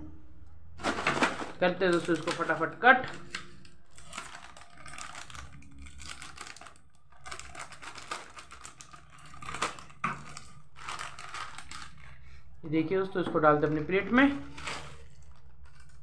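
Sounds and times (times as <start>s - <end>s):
plastic wrapper crackling: 0.8s - 12.2s, 13.6s - 16.0s
scissors cutting plastic packet: 0.8s - 12.2s, 13.6s - 16.0s.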